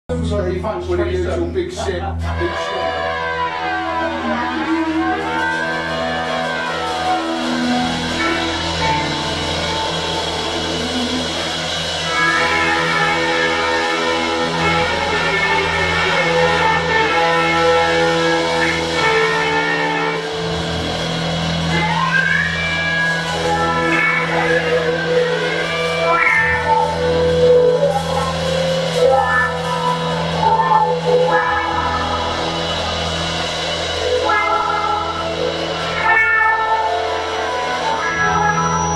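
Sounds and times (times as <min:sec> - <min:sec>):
steady low bass note: 0:00.1 - 0:25.7
electric guitars ringing notes: 0:00.1 - 0:38.9
live rock band playing: 0:00.1 - 0:38.9.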